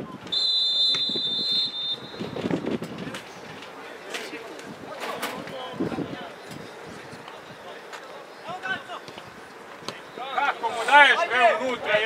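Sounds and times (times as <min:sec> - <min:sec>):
referee's whistle blast: 0:00.3 - 0:02.4.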